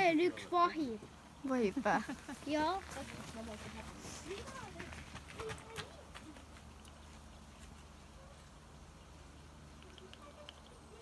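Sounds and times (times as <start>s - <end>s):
faint low hum: 0.1s - 11.0s.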